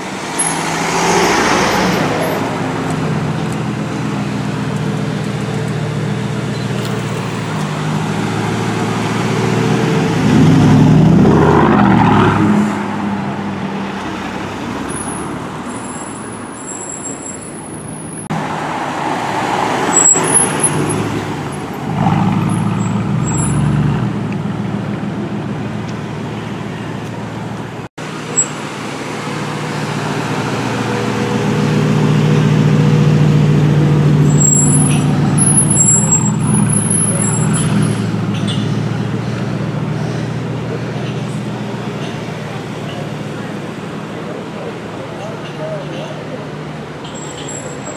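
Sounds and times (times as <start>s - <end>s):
car engine revving: 0.7s - 14.5s.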